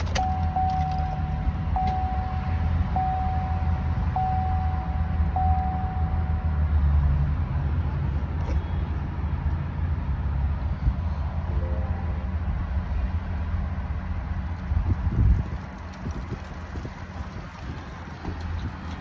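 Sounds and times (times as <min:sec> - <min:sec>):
dashboard warning chime beeping: 0:00.0 - 0:06.7
engine idling low hum: 0:00.0 - 0:19.0.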